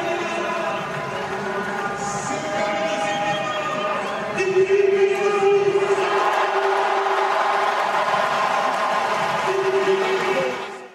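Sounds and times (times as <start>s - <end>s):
stadium crowd noise: 0.0s - 10.9s.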